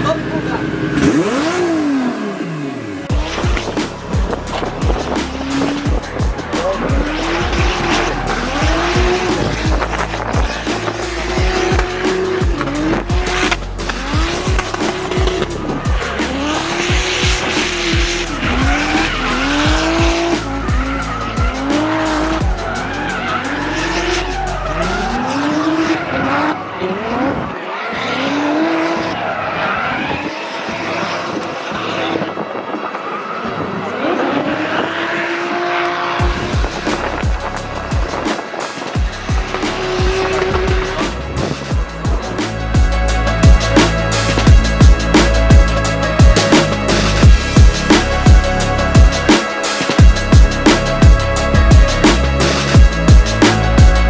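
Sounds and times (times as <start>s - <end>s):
car engine revving: 0.0s - 54.0s
tyres squealing: 3.3s - 30.2s.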